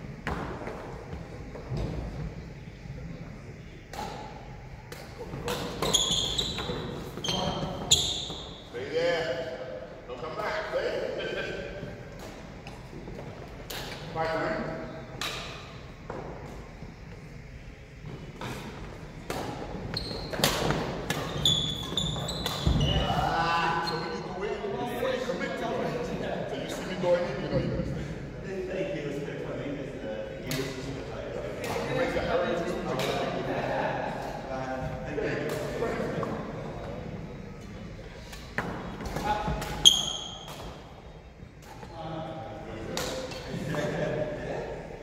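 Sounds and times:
trainers squeaking on floor: 5.5s - 8.8s, 19.8s - 24.3s, 39.2s - 40.6s
racket hitting shuttlecock: 18.4s - 21.4s, 42.9s - 43.5s
men's voices: 41.8s - 45.0s.

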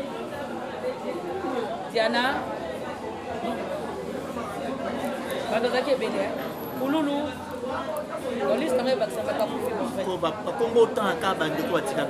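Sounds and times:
people chattering in a room: 0.0s - 12.0s.

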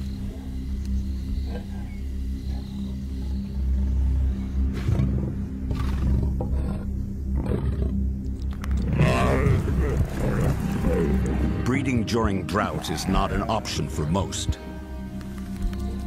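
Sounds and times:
background music with drone: 0.0s - 16.0s
lions growling: 4.7s - 11.6s.

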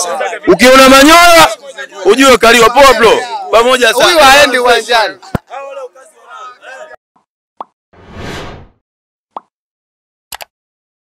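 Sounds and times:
swish: 8.0s - 8.8s
click: 10.3s - 10.5s.

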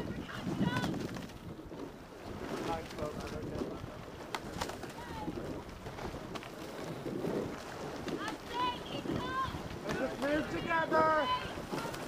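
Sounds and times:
wind: 0.0s - 12.0s
bicycle rolling on gravel: 0.1s - 12.0s.

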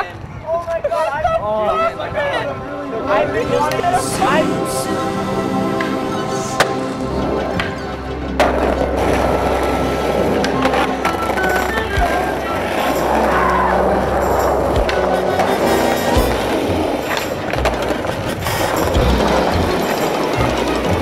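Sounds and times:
skateboard wheels rolling on concrete: 0.0s - 21.0s
background music: 1.3s - 21.0s.

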